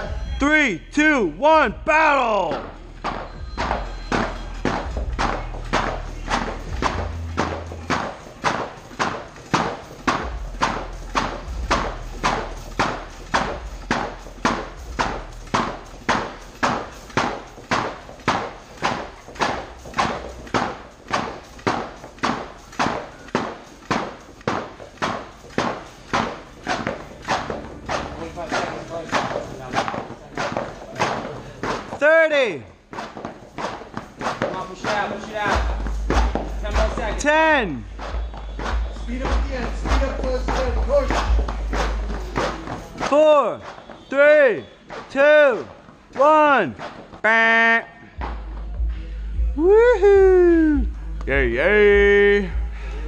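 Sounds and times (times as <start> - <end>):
ropes slamming on a mat: 2.5 - 32.0.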